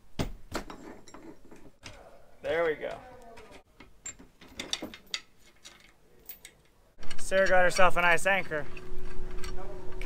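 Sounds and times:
metal chain clinking: 0.7 - 1.8, 3.4 - 6.8.

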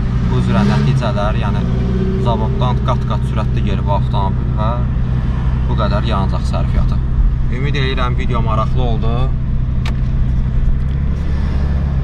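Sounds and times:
diesel engine drone: 0.0 - 12.0
road noise: 0.0 - 12.0.

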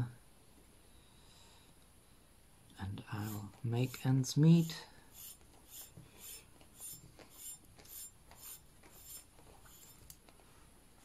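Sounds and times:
string rubbing through pipe: 3.2 - 10.0.

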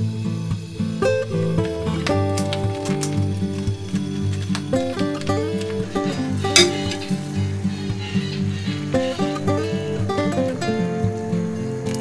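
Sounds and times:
plucked guitar-like music: 0.0 - 12.0
sharp crackle: 0.8 - 10.7
pot of stock boiling: 1.0 - 7.8.

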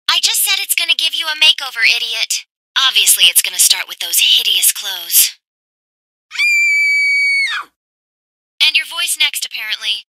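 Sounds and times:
woman screaming high-pitched: 6.3 - 7.8.

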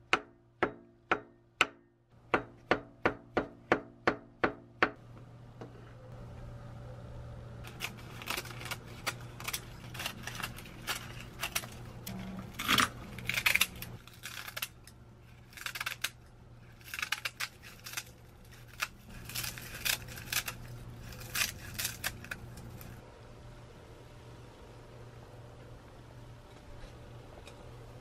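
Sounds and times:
faint low hum: 0.4 - 28.0
scissors cutting seaweed sheets: 7.7 - 23.0.

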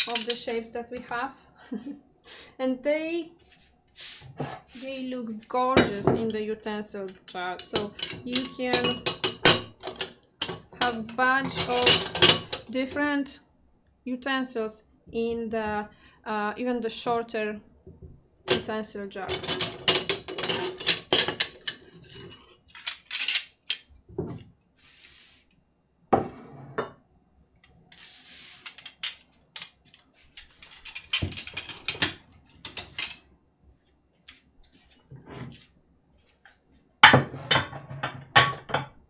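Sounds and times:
stoneware utensils clinking: 0.0 - 0.5, 7.1 - 12.7, 19.3 - 23.9, 30.6 - 33.3
ceramic dishes clattering: 7.6 - 12.7, 19.3 - 23.8, 30.8 - 33.3, 37.0 - 39.0.

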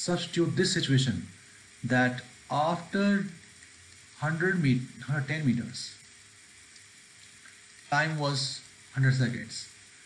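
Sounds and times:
man speaking: 0.0 - 3.4, 4.2 - 6.0, 7.9 - 9.8
microphone hiss: 0.0 - 10.0.

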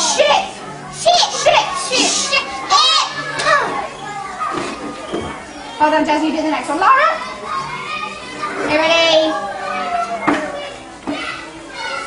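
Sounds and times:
young children talking: 0.0 - 12.0
child's loud call: 1.2 - 4.4.

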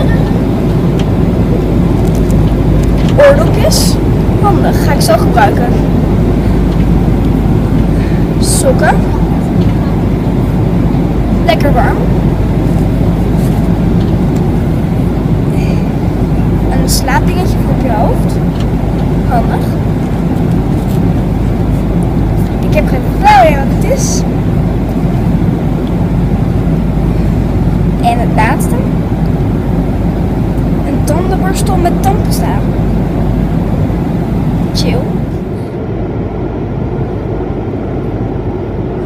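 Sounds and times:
airliner cabin rumble: 0.0 - 39.0.

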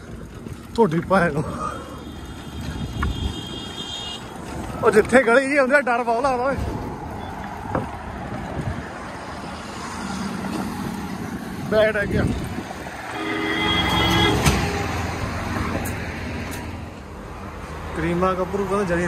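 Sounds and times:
bus: 0.0 - 19.0
road traffic passing: 0.0 - 19.0
vehicle horn steady note: 13.1 - 14.8.

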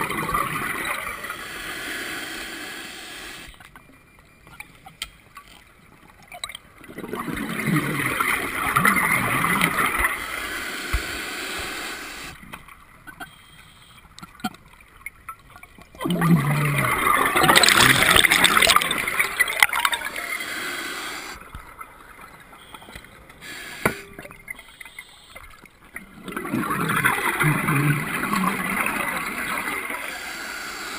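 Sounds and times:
scuba regulator exhaust bubbles: 16.0 - 21.4, 26.2 - 30.9.

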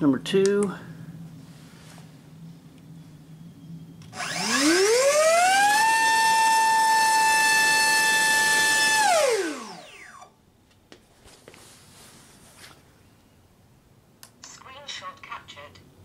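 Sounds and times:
electric motor spinning propeller: 4.0 - 10.3.

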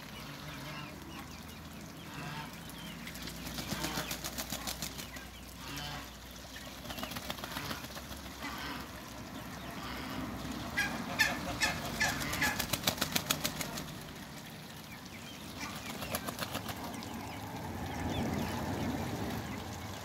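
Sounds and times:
duck wings flapping: 3.4 - 5.2, 6.8 - 8.3, 12.0 - 14.0, 15.9 - 16.9
duck calls: 10.8 - 12.8.

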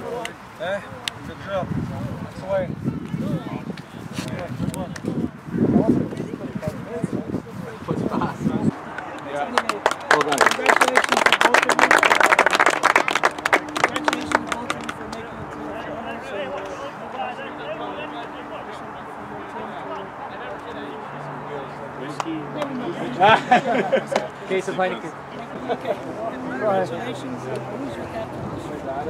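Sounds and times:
low murmur of voices: 0.0 - 29.0
small group clapping: 8.9 - 15.3, 22.1 - 22.8.

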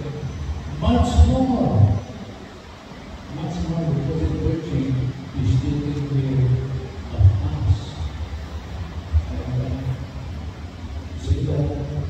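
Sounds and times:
man preaching over sound system: 0.0 - 2.2, 3.3 - 8.2, 9.1 - 10.2, 11.1 - 12.0.

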